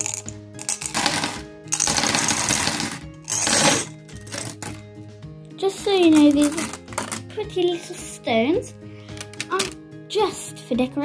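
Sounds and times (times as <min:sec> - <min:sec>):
glass gems clattering into foil tray: 0:00.0 - 0:04.8.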